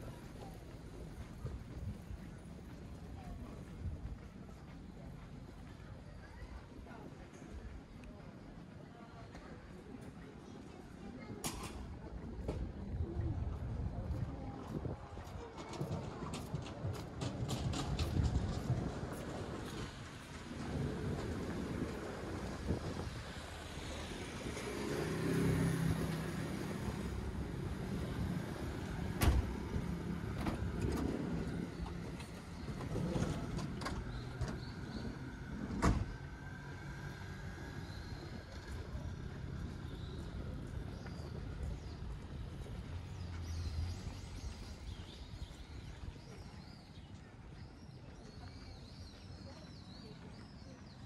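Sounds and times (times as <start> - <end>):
street ambience: 0.0 - 51.0.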